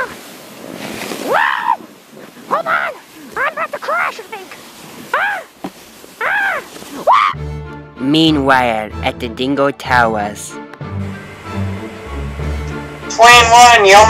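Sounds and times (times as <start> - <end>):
sled sliding hiss: 0.0 - 7.1
person crying out: 1.3 - 1.8, 5.1 - 5.5, 6.2 - 7.4
music: 7.4 - 14.0.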